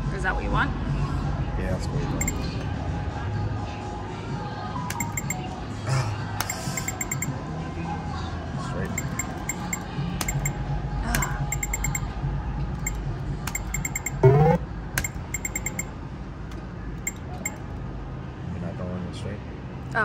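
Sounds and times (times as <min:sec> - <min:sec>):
electronic ticks of poker machine: 0:02.2 - 0:02.6, 0:04.9 - 0:05.5, 0:06.4 - 0:07.3, 0:08.9 - 0:10.6, 0:11.2 - 0:12.1, 0:12.8 - 0:15.9, 0:17.0 - 0:17.7
low casino hum: 0:02.2 - 0:02.8, 0:04.9 - 0:05.5, 0:06.4 - 0:07.3, 0:08.8 - 0:10.6, 0:11.2 - 0:12.1, 0:12.7 - 0:17.8.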